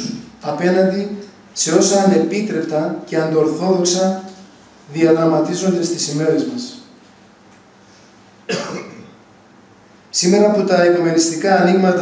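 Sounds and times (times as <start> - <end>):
person coughing: 8.5 - 9.2.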